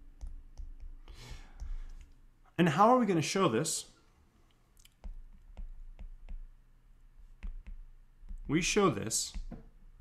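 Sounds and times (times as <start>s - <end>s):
stylus tapping on tablet screen: 0.0s - 1.0s, 4.9s - 6.6s, 7.2s - 8.6s.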